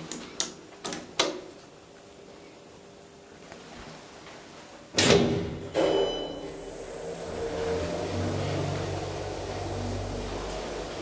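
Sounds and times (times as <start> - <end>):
elevator low hum and high whine: 0.0 - 11.0
elevator doors clunking shut: 5.0 - 11.0.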